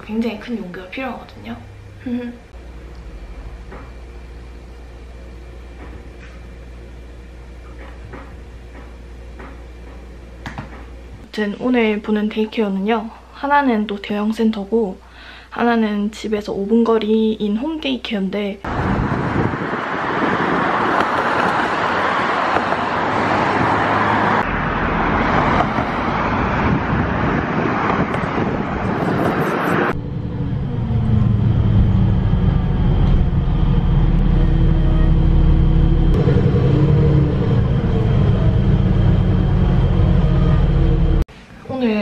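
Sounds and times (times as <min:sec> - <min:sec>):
bus engine hum: 0:00.0 - 0:11.2, 0:18.7 - 0:41.3
road noise inside bus: 0:00.0 - 0:11.3, 0:18.7 - 0:41.3
road traffic rushing: 0:18.7 - 0:41.3.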